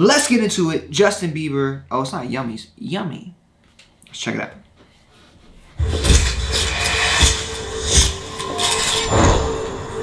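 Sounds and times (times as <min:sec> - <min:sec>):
sharp knocks and clatter: 0:05.8 - 0:09.5
steady hum: 0:05.8 - 0:10.0.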